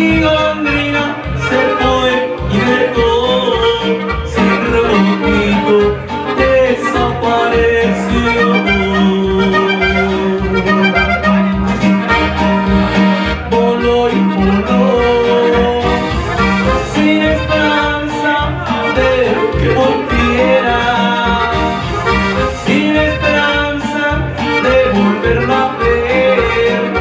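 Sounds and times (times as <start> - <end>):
button accordion: 0.0 - 27.0
electronic keyboard: 0.0 - 27.0
steady low beat: 0.0 - 27.0.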